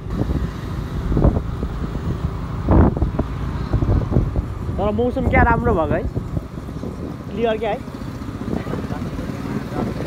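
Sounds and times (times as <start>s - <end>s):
motorbike engine and road rumble: 0.0s - 10.0s
wind buffeting microphone: 0.0s - 10.0s.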